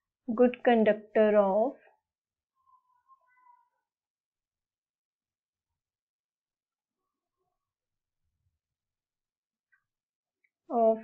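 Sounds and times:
faint animal call: 2.6 - 3.9.

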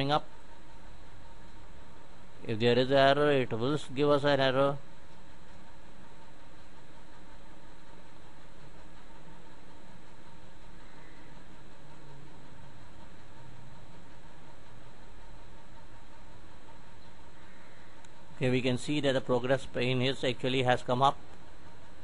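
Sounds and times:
faint hum: 0.0 - 22.0.

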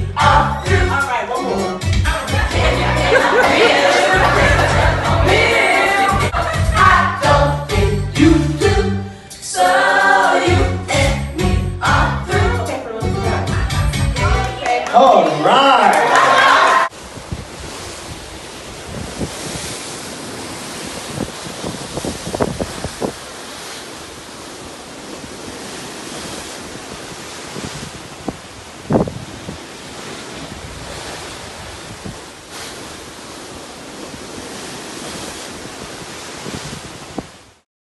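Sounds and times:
sea waves: 0.0 - 12.1, 14.2 - 37.6
music with singing: 0.0 - 15.6
wind blowing on microphone: 16.9 - 37.6.

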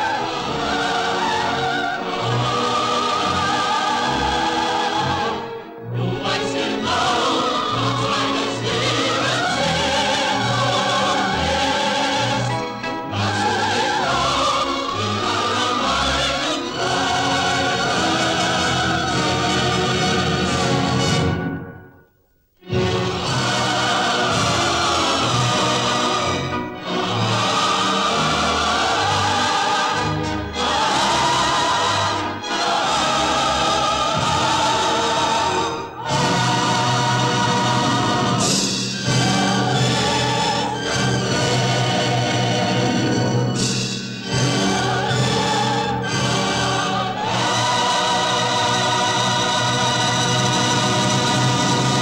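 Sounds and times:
choir singing: 0.0 - 21.8, 22.6 - 52.0
orchestral waltz: 0.0 - 52.0.

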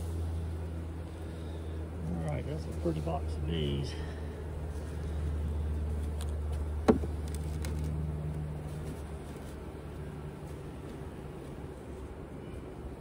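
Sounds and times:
low steady hum: 0.0 - 13.0
wooden hive equipment knock: 6.8 - 7.3.

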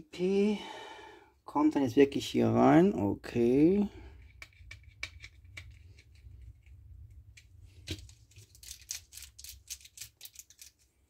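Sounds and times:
low steady hum: 0.0 - 9.4
plastic pieces clicking: 4.2 - 11.0
screwdriver turning screw in plastic: 7.9 - 10.9.

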